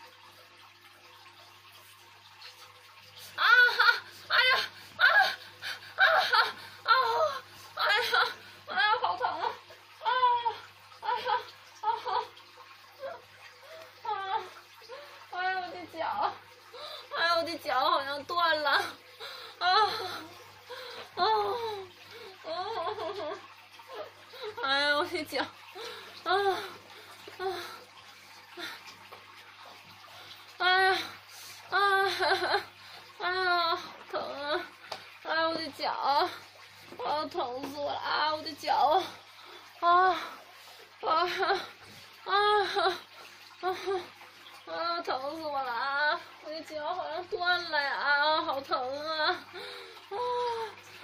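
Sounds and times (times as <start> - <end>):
woman moaning in pain: 3.4 - 11.4, 19.6 - 20.4, 21.1 - 23.2.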